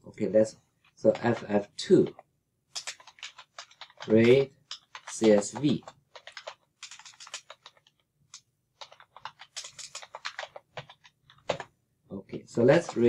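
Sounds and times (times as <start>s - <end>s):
keyboard typing: 0.8s - 11.7s, 12.7s - 13.0s.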